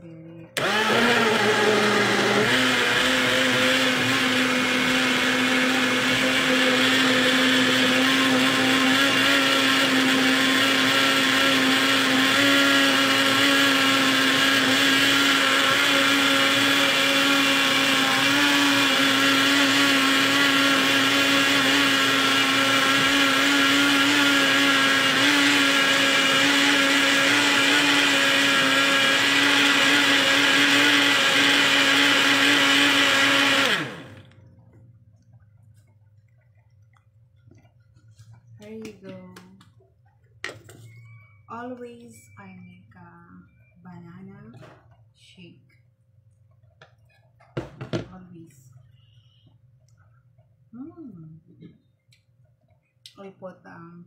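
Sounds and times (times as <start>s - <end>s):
electric blender running: 0.6s - 34.4s.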